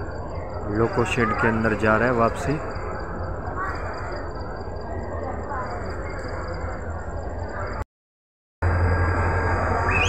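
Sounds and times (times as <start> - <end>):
distant locomotive engine rumble: 8.6 - 10.0
faint calls: 9.7 - 10.0.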